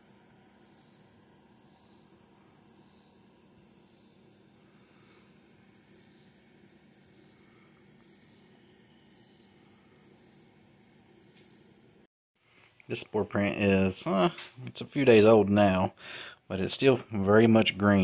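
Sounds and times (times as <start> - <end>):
insect trill: 0.0 - 12.1
pulsing insect call: 0.0 - 12.1.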